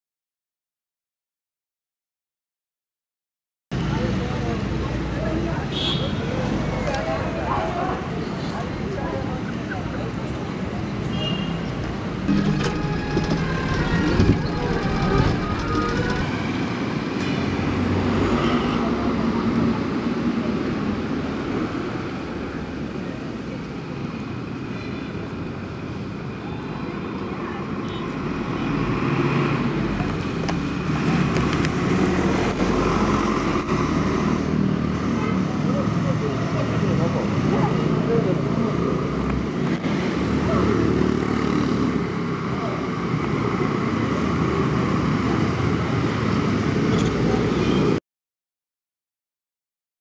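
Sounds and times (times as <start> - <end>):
many people talking: 3.8 - 10.9, 12.3 - 16.4, 35.1 - 39.4
motor traffic: 3.8 - 48.0.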